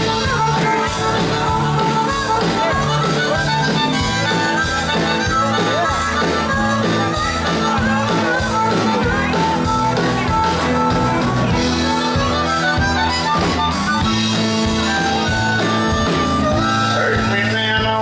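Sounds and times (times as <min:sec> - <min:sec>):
country band playing: 0:00.0 - 0:18.0
harmonica with bending notes: 0:00.0 - 0:18.0.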